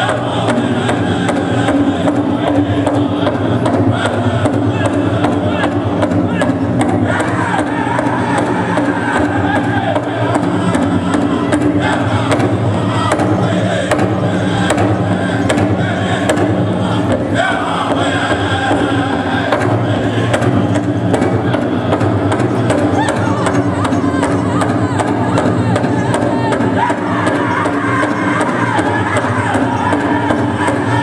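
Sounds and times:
big drum beating: 0.0 - 31.0
group singing: 0.0 - 31.0
men chanting together: 0.0 - 31.0.

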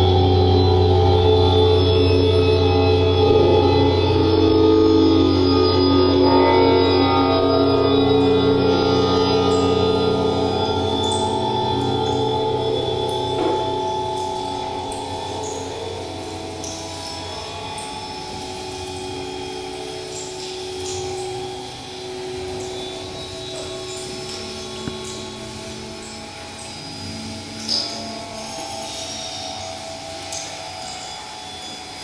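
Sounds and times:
layered sustained drone tones: 0.0 - 32.0.

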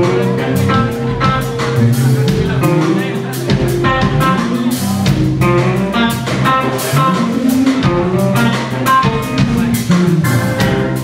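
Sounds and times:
drums with steady cymbal beat: 0.0 - 11.0
electric guitar: 0.0 - 11.0
keyboards: 0.0 - 11.0.

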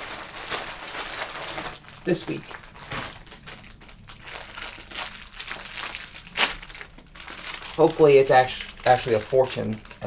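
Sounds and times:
cellophane wrapper crinkling: 0.0 - 10.0.

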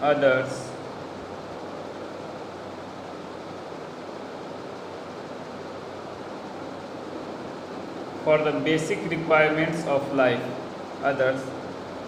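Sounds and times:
faint low hum: 0.0 - 12.0
room noise hiss: 0.0 - 12.0.

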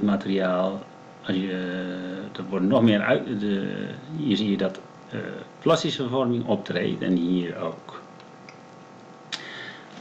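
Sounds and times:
microphone hiss: 0.0 - 10.0.

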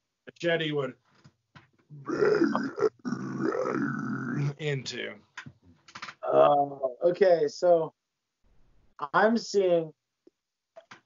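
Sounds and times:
man grunting: 2.0 - 4.6.

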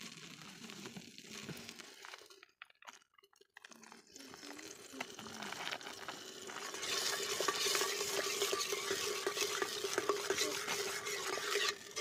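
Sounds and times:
gravy bubbling and sizzling: 0.0 - 12.0
ladle scraping and clinking pot: 6.2 - 12.0.

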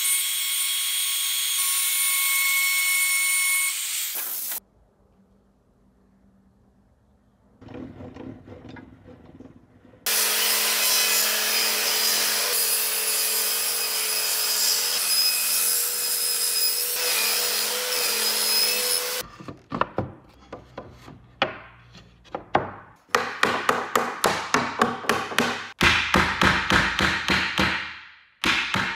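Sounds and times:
table saw cutting wood: 0.0 - 4.6, 10.0 - 19.3
wooden knocks and clacks: 7.6 - 10.1, 19.4 - 25.7.

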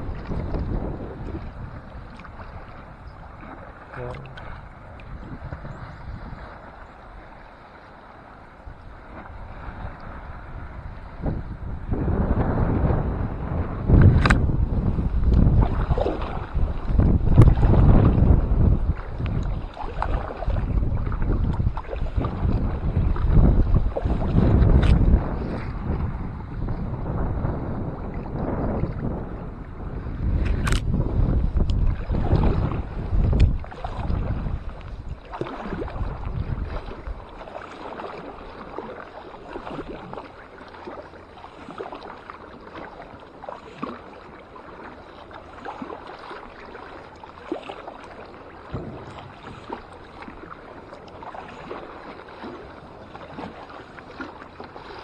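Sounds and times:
kayak paddle splashing: 0.0 - 55.0
wind rumbling on microphone: 0.0 - 55.0
sharp clicks: 30.5 - 30.9.

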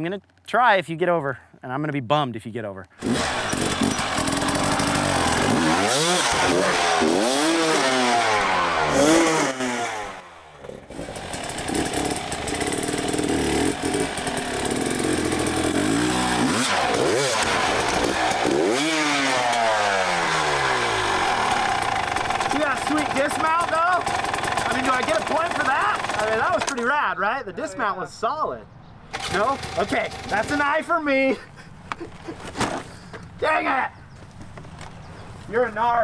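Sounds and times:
dirt bike engines revving: 3.0 - 27.0, 29.1 - 35.6.

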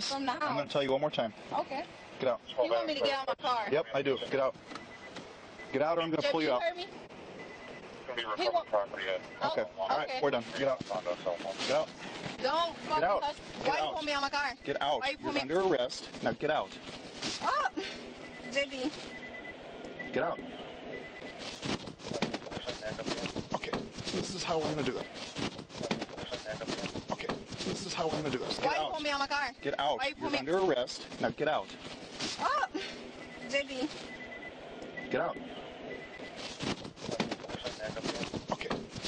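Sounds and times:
clothing rustling: 10.3 - 14.2, 15.3 - 18.1, 21.2 - 28.8, 30.3 - 33.0, 36.2 - 39.0
scuffling of physical struggle: 10.3 - 14.3, 15.3 - 19.2, 21.2 - 29.0, 30.2 - 34.2, 36.2 - 39.0.

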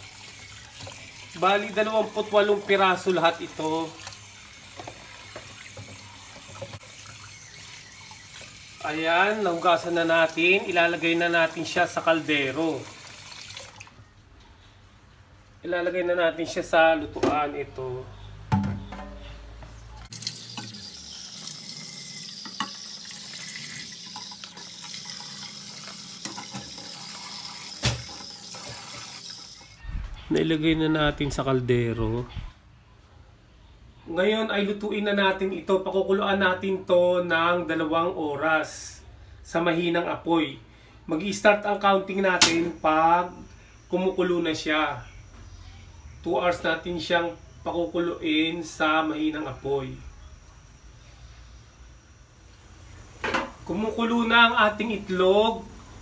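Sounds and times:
tap water running into a pot: 0.0 - 13.9, 20.1 - 29.8.

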